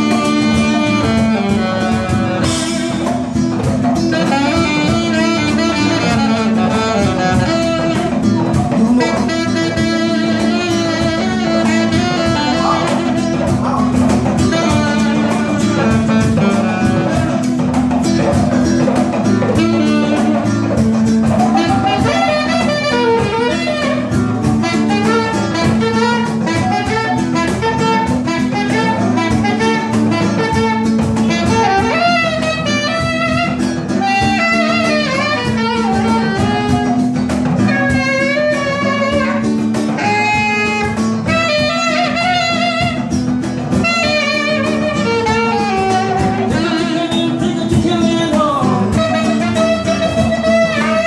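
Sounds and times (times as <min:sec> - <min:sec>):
live band music: 0:00.0 - 0:51.0
percussion beat: 0:00.0 - 0:51.0
saxophone melody: 0:00.0 - 0:51.0
strummed acoustic guitar: 0:00.0 - 0:51.0.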